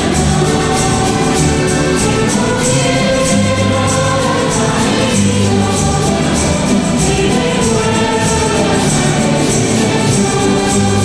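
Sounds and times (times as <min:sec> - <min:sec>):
choir singing a hymn: 0:00.0 - 0:11.0
guitar accompaniment: 0:00.0 - 0:11.0
held bass notes: 0:00.0 - 0:11.0
high percussion beat: 0:00.0 - 0:11.0.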